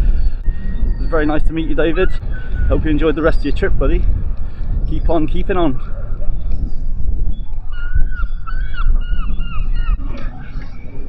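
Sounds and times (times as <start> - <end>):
gull calling: 0.0 - 3.6, 7.4 - 11.0
wind buffeting microphone: 0.0 - 11.0.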